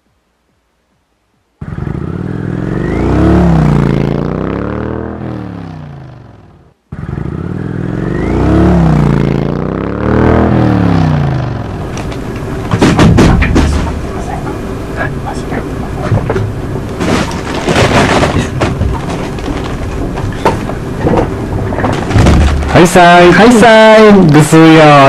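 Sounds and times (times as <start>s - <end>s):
engine revving: 1.6s - 12.6s
sharp knocks: 12.6s - 14.6s, 16.1s - 22.8s.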